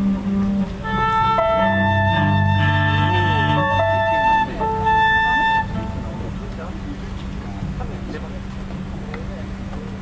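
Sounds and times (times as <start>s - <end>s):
flute long notes: 0.0s - 6.3s
cello: 0.0s - 8.4s
keyboard: 0.0s - 10.0s.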